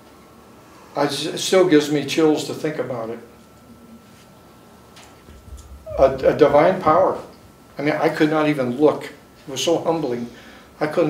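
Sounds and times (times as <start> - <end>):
thin steady high hum: 0.0 - 11.0
man speaking into microphone: 1.0 - 3.3, 5.9 - 11.0
low rumble: 5.3 - 7.6.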